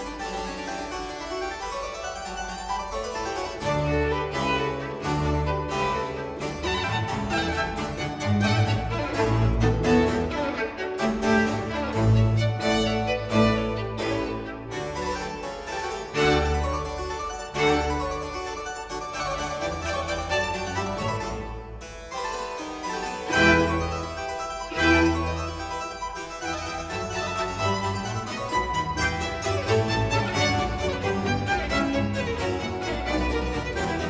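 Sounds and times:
baroque string ensemble: 0.0s - 34.0s
harpsichord playing fast solo: 0.0s - 34.0s.

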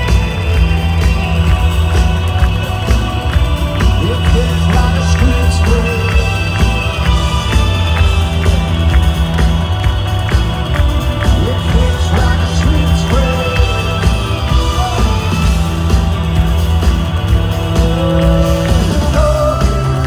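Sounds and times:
live rock band playing: 0.0s - 20.0s.

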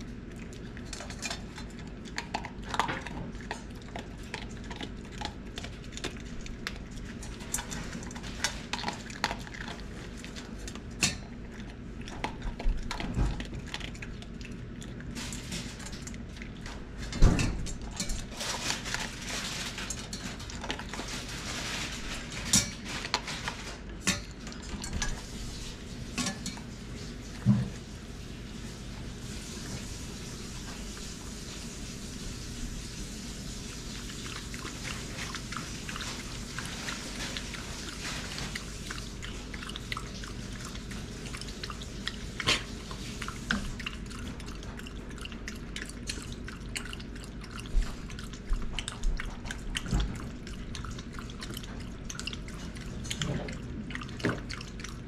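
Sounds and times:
dog eating: 0.0s - 55.0s.

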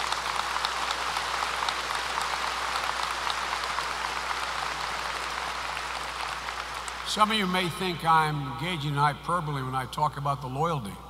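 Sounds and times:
audience applauding: 0.0s - 8.5s.

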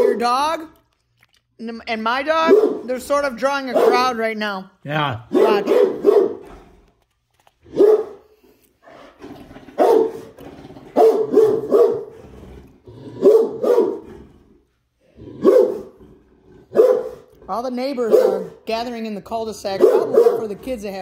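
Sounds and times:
dog barking deeply: 3.7s - 4.2s, 5.2s - 6.5s, 7.7s - 8.2s, 9.7s - 12.2s, 13.0s - 14.2s, 15.3s - 16.0s, 16.6s - 17.3s, 18.0s - 18.6s, 19.8s - 20.7s.

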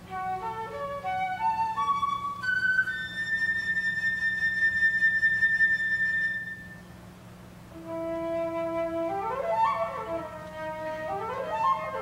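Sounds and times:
flute holding long high note: 0.0s - 7.0s, 7.7s - 12.0s.

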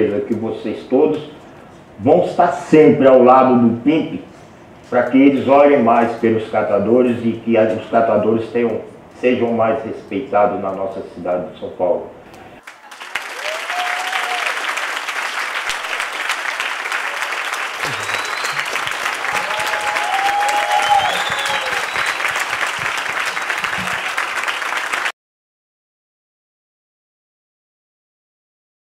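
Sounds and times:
audience applauding: 12.6s - 25.1s
people cheering: 12.6s - 25.1s.

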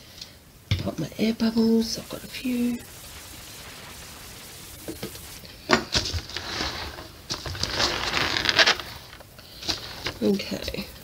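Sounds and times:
plastic wrap crinkling: 2.6s - 10.5s.

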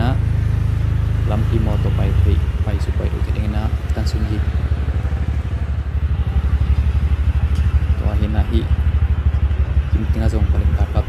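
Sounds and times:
people talking: 0.0s - 0.2s, 1.3s - 4.5s, 8.0s - 8.7s, 9.9s - 11.0s
motorbike engine idling: 0.0s - 11.0s.

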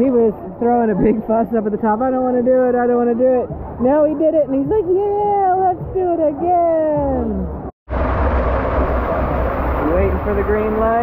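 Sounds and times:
low rumble: 7.2s - 11.0s
water rushing down a slide tube: 7.9s - 11.0s.

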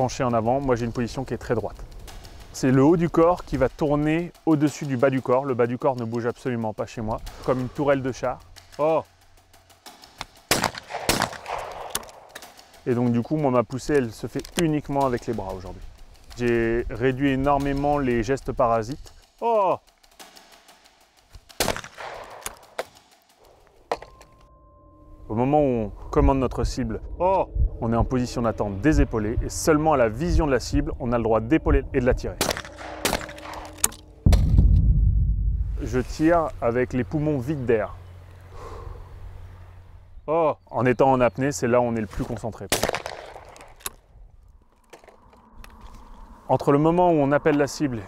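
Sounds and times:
sharp crack: 0.0s - 24.4s, 31.6s - 35.0s, 42.1s - 46.2s
shotgun shot: 10.5s - 12.6s, 21.5s - 23.1s, 32.4s - 34.8s, 42.7s - 43.7s.

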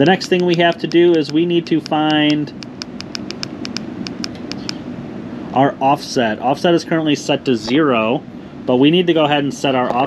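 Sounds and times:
radio key clicks: 0.2s - 4.8s.

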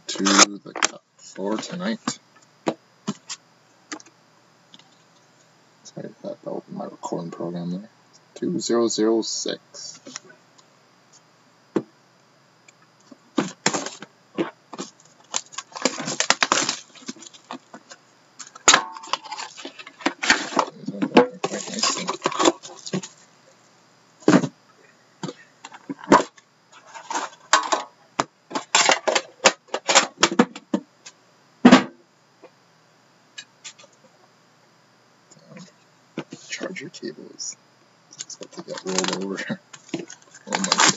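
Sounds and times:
packaging crinkling and rustling: 13.4s - 20.8s, 21.4s - 23.2s, 38.2s - 40.9s
sharp clicks of packaging: 14.8s - 17.6s, 38.1s - 40.9s.

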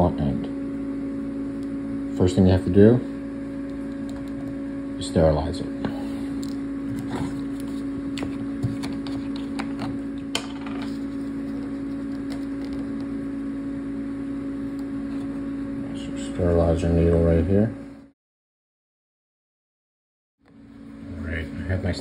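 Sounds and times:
low motor hum: 0.0s - 18.1s.

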